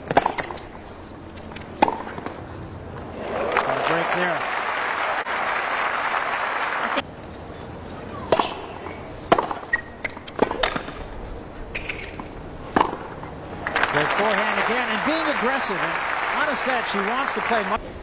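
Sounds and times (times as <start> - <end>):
racket hitting tennis ball: 0.0 - 0.7, 1.4 - 2.4, 8.3 - 11.0, 11.8 - 13.3
crowd applauding: 3.2 - 7.0, 13.6 - 17.8.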